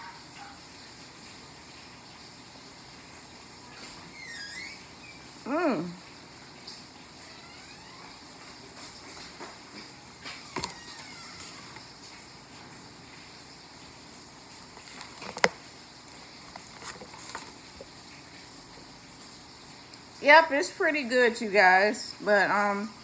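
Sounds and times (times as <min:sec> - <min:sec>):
low steady background noise: 0:00.0 - 0:23.0
quiet eating: 0:14.4 - 0:20.1.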